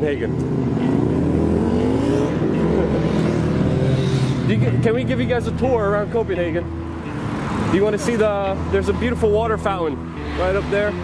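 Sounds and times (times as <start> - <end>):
passing traffic rumble: 0.0 - 11.0
vehicle engine accelerating: 0.2 - 11.0.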